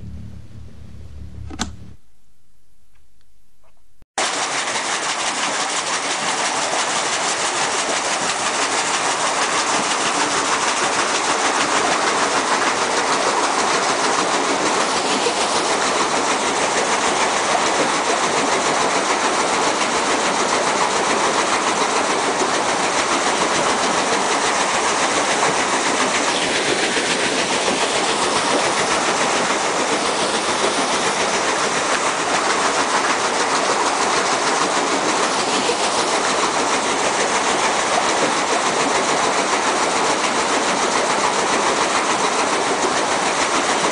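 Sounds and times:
mechanical clatter and rattle: 4.4s - 43.9s.

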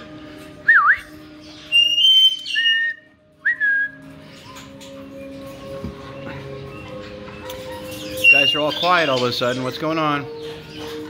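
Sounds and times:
parrots whistling: 0.6s - 5.4s, 6.1s - 9.8s.

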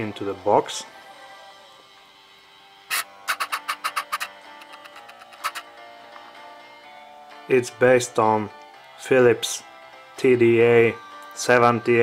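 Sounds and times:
music from radio loudspeaker: 0.0s - 12.0s.

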